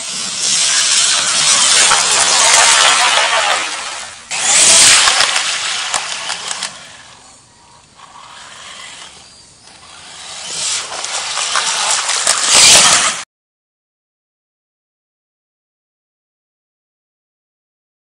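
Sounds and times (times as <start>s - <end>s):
electric motor whine: 0.0s - 13.2s
water splashing: 0.8s - 6.4s, 10.6s - 13.2s.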